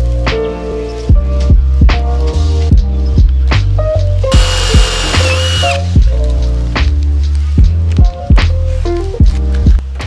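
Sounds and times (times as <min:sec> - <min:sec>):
music with steady beat: 0:00.0 - 0:10.0
power drill boring into metal: 0:04.3 - 0:05.9.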